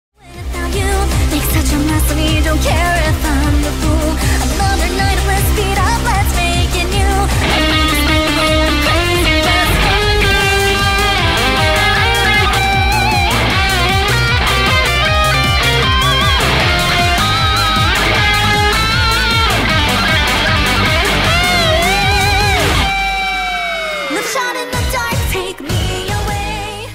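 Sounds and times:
rhythmic backing track: 0:02.5 - 0:23.3
electric guitar solo: 0:07.4 - 0:24.8.

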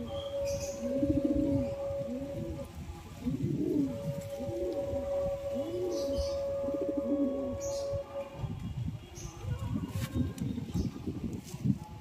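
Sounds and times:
pigeon cooing: 0:00.0 - 0:08.4.

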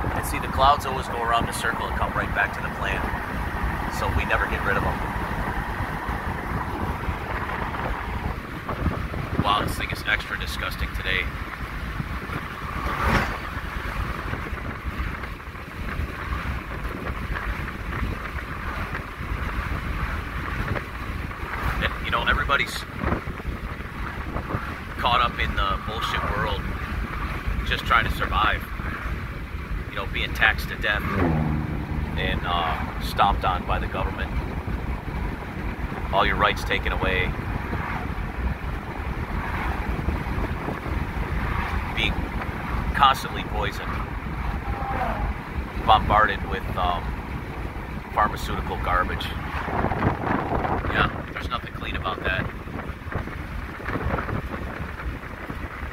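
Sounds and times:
truck passing: 0:00.0 - 0:09.5, 0:11.0 - 0:21.8, 0:22.8 - 0:55.9
low rumble: 0:00.0 - 0:21.9, 0:22.8 - 0:51.4
road and wind noise in vehicle: 0:00.0 - 0:55.9.

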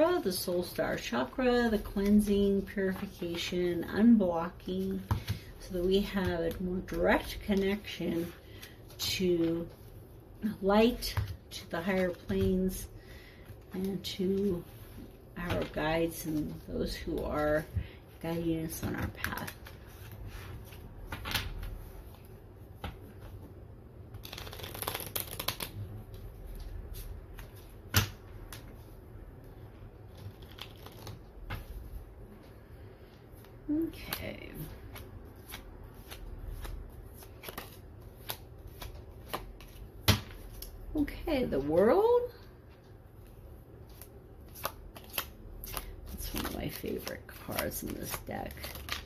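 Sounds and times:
cards shuffling: 0:24.1 - 0:28.8, 0:30.1 - 0:31.8, 0:33.4 - 0:40.8, 0:43.9 - 0:49.0
cards snapping: 0:24.2 - 0:25.7.

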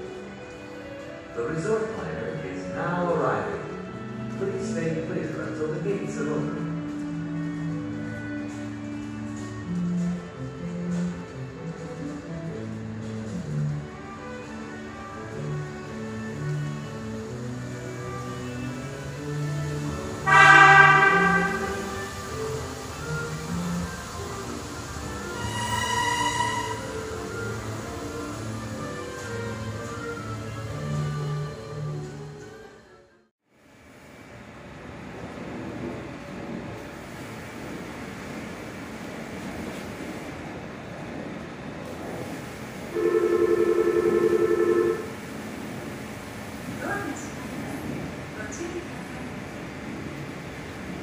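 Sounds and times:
monorail running with rumble: 0:00.0 - 0:51.0
monorail horn chime: 0:16.3 - 0:23.8, 0:25.0 - 0:31.9, 0:42.9 - 0:45.3
warbling two-tone electronic signal: 0:43.0 - 0:45.1.

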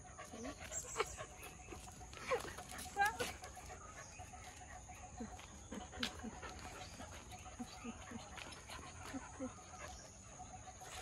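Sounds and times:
dogs whimpering: 0:00.0 - 0:11.0.

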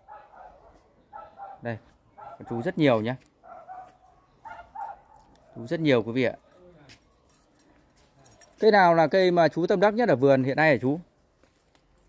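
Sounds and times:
dog barking faintly: 0:00.0 - 0:05.9.

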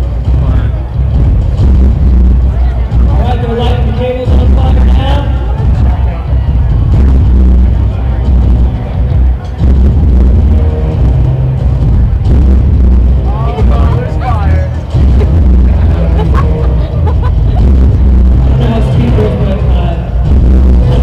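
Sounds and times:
amplified music with heavy bass: 0:00.0 - 0:21.0
person speaking over music: 0:02.8 - 0:06.4, 0:13.2 - 0:16.8, 0:18.3 - 0:21.0.

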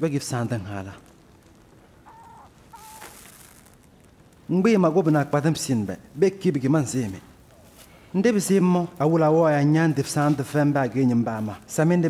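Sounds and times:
faint short bird calls: 0:02.0 - 0:03.4.

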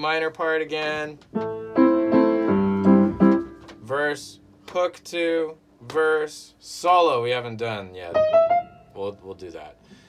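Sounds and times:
piano chords: 0:01.3 - 0:04.0, 0:08.0 - 0:09.7.

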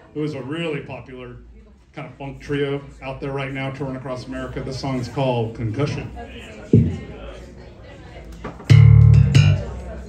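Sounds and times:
funk band playing: 0:08.7 - 0:09.7
loud low chord: 0:08.7 - 0:09.7.

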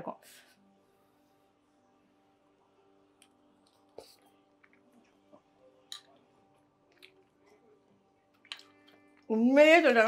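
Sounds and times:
quiet chewing: 0:06.9 - 0:07.7.

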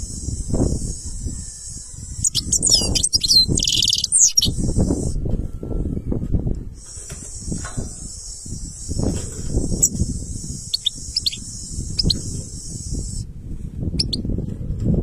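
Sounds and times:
steady high buzzing: 0:00.0 - 0:05.2, 0:06.8 - 0:13.3
low rumbling on microphone: 0:00.0 - 0:15.0
bird call notes: 0:00.9 - 0:05.1, 0:09.7 - 0:13.2.

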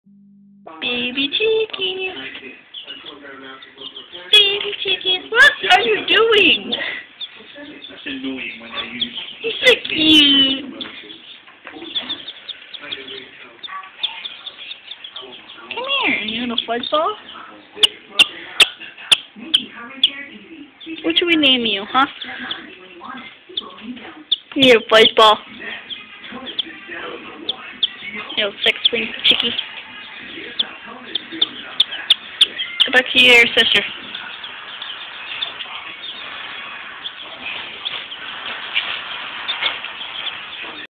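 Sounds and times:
chicks peeping: 0:00.8 - 0:40.9.

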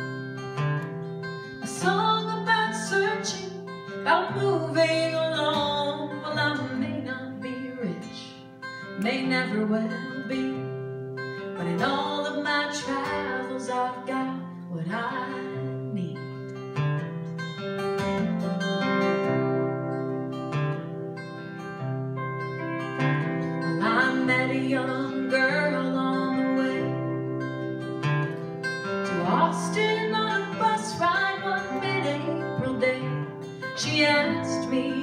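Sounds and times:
acoustic guitar strumming: 0:00.0 - 0:35.0
electric guitar lead lines: 0:00.0 - 0:35.0
person singing: 0:23.6 - 0:27.4, 0:29.0 - 0:35.0.

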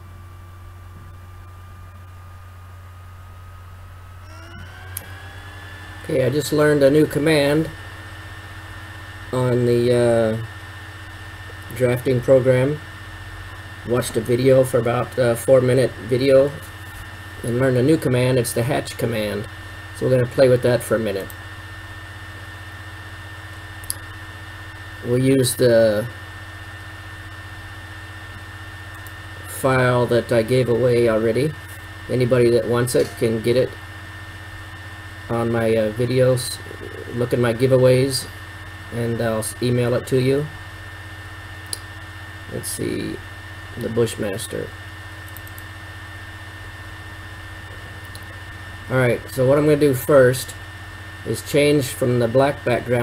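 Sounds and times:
faint thin whine tones: 0:00.0 - 0:53.0
low electrical hum: 0:00.0 - 0:53.0
sharp click: 0:23.8 - 0:24.0, 0:45.3 - 0:45.7.

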